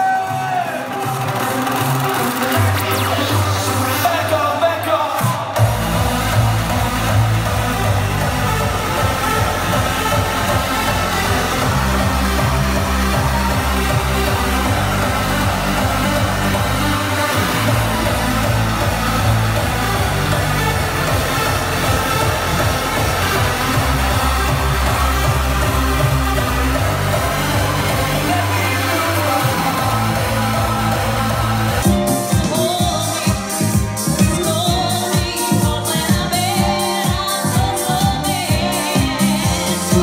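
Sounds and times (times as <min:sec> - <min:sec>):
electronic dance music: 0:00.0 - 0:40.0.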